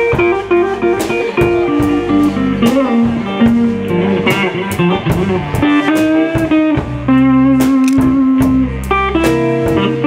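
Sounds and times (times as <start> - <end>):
drums with cymbal hits: 0.0 - 10.0
electric guitars playing: 0.0 - 10.0.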